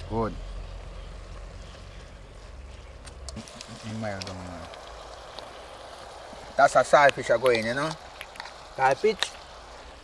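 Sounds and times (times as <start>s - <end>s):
pot steaming hiss: 0.0s - 10.0s.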